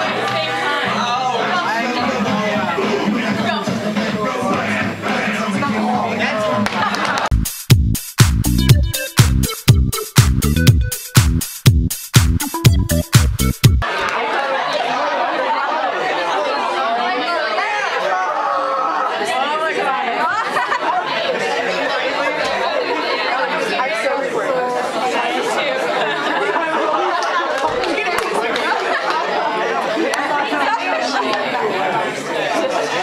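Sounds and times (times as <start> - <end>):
chatter of many people: 0.0 - 7.3, 13.8 - 33.0.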